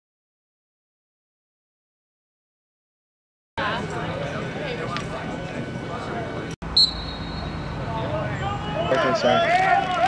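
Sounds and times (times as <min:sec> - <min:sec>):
short high whistle: 0:06.8 - 0:07.7.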